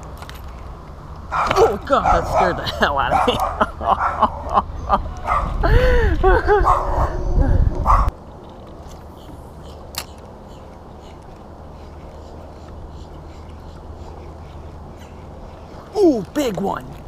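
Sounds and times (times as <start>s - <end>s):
man laughing: 2.5s - 6.7s.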